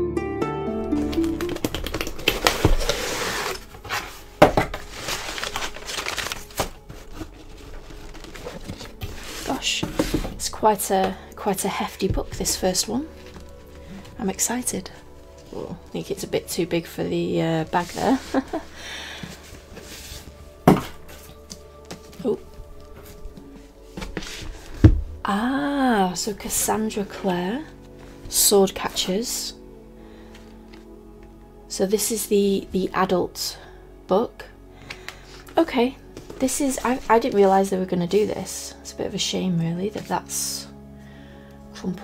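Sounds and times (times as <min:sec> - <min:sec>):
tissue paper rustling: 0:01.0 - 0:11.2, 0:12.2 - 0:16.3, 0:17.6 - 0:24.9, 0:36.2 - 0:38.2
book thumping onto table: 0:04.4 - 0:04.8, 0:20.6 - 0:21.2, 0:24.0 - 0:25.2.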